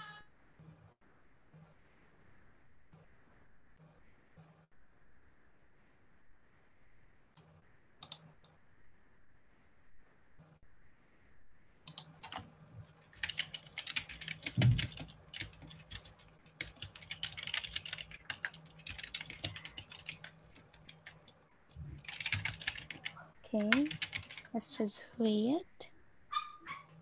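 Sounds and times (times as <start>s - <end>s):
fast typing on keyboard: 11.9s - 21.4s, 22.0s - 24.6s
low thump: 14.6s - 14.9s.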